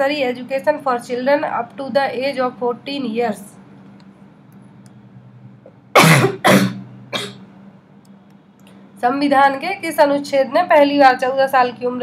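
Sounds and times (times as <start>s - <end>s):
person coughing: 6.0s - 7.4s.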